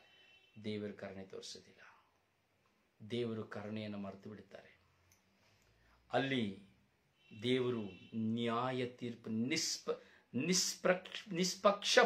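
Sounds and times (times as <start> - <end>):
man speaking: 0.6 - 2.0, 3.0 - 4.8, 6.1 - 6.8, 7.4 - 12.0.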